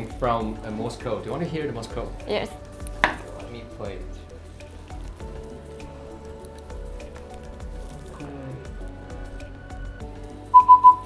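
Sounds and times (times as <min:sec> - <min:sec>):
morse code tones: 0:10.6 - 0:11.0.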